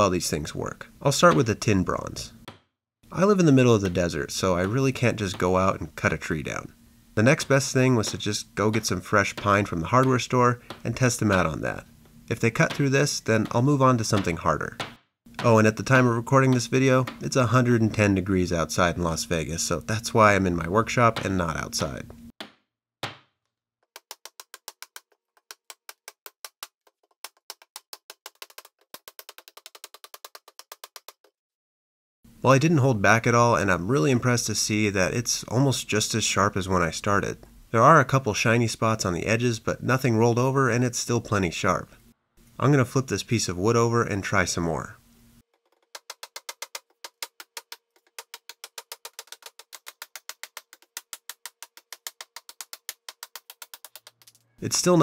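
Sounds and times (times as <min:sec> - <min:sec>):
hatchet chopping wood: 0:08.0 - 0:11.6, 0:12.6 - 0:17.3, 0:22.4 - 0:23.3.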